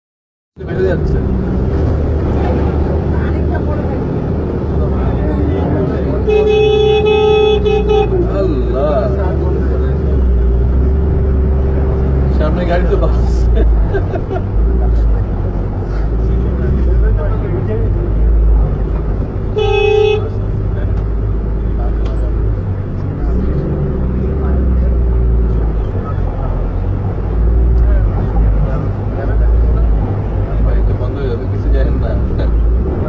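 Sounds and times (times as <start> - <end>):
vehicle horn toot: 6.2 - 8.3, 19.5 - 20.4.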